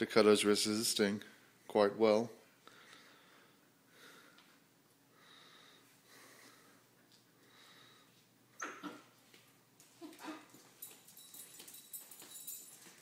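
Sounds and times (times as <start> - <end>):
light clicking and scuffling: 9.2 - 13.0.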